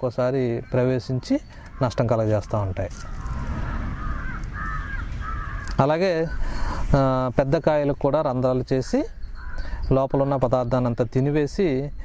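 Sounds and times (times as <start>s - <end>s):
birds calling: 0.0s - 12.0s
steady low rumble: 2.8s - 5.7s.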